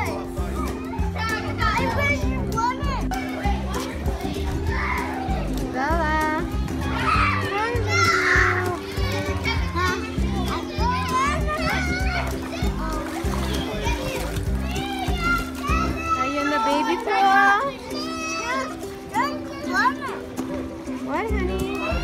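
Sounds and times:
high child-like voices: 0.0 - 5.6, 6.2 - 20.3
music with repeating bass line: 0.0 - 15.9
water splash: 10.4 - 17.6.

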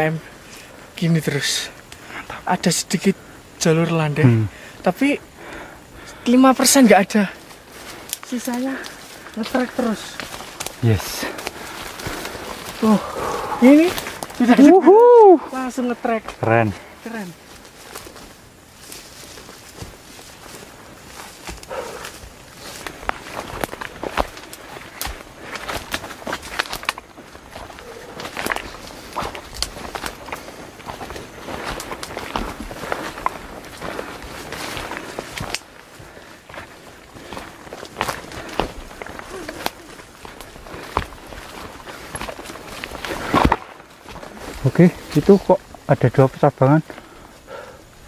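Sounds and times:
footsteps on dirt trail: 0.0 - 48.0
leaves and stems crackling: 0.0 - 48.0.

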